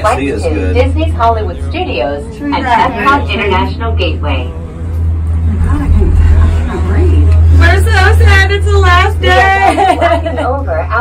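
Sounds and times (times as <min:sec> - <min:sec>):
faint voices talking: 0:00.0 - 0:11.0
gondola cabin low rumble: 0:00.0 - 0:11.0.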